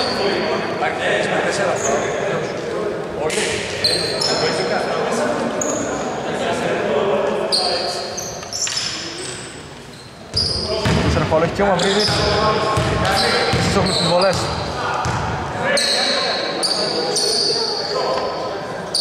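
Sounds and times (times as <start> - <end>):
players' voices echoing: 0.0 - 19.0
sneakers squeaking on court: 3.8 - 4.5, 7.5 - 18.0
ball bouncing: 10.3 - 11.3, 12.0 - 15.3.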